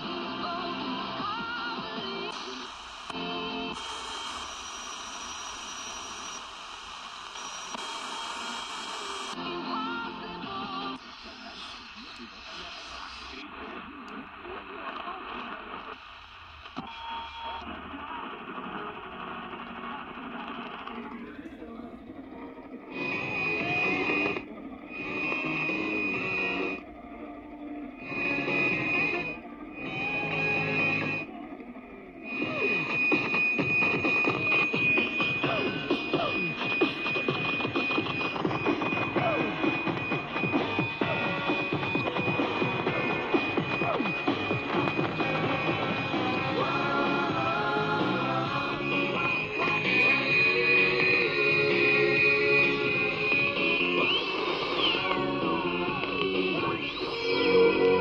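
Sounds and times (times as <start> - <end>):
music through portable radio: 0.0 - 58.0
steady high radio whistle: 1.4 - 10.1, 10.8 - 18.3, 22.8 - 58.0
whistle gliding up and down: 48.6 - 55.4.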